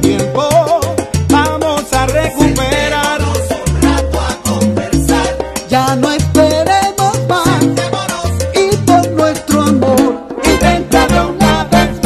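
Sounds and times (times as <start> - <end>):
bass line: 0.0 - 12.0
salsa music: 0.0 - 12.0.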